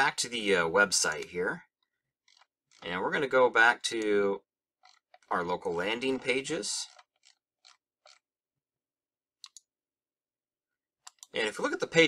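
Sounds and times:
computer mouse clicks: 1.0 - 1.3, 9.4 - 9.7, 11.0 - 11.4.

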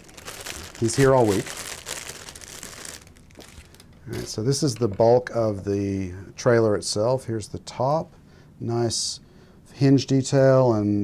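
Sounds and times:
plastic bag crinkling: 0.0 - 4.0.

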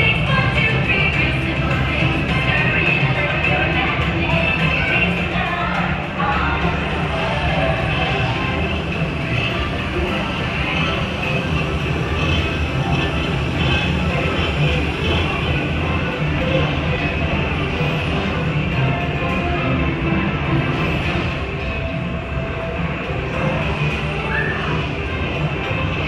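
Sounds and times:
ride vehicle low rumble: 0.0 - 26.0
soundtrack music: 0.0 - 26.0.

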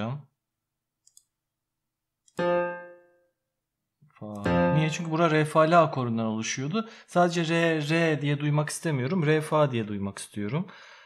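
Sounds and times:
faint mouse clicks: 1.0 - 1.3.

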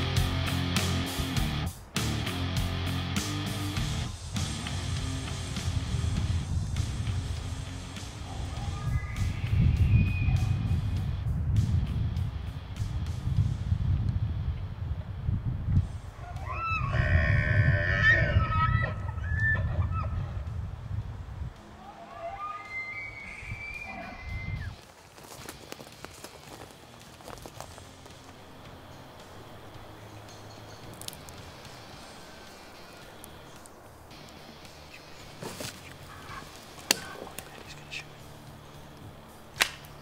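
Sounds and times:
low background music: 0.0 - 24.8, 25.6 - 40.0
elk calls whistling: 7.8 - 10.9, 16.2 - 20.4, 21.8 - 24.8, 34.2 - 38.8.

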